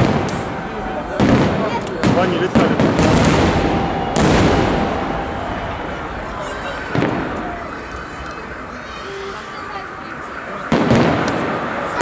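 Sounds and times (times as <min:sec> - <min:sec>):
firework shells booming: 0:00.0 - 0:09.0, 0:09.6 - 0:12.0.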